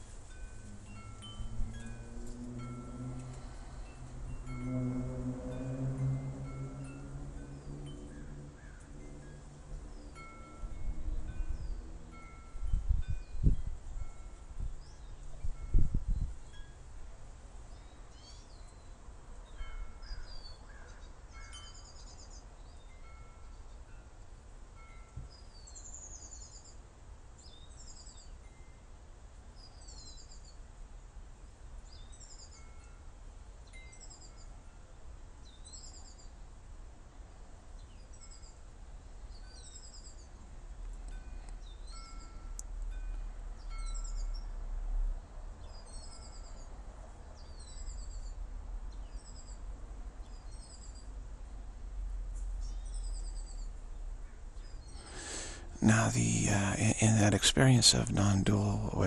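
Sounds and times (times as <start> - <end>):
clear chime-like tones: 0.3 - 8.2.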